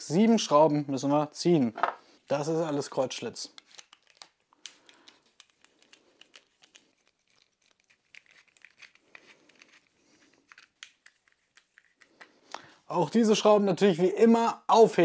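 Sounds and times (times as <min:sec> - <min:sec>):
handling rustle: 0:03.5 - 0:12.3
screwdriver clicking and scraping: 0:03.6 - 0:12.3.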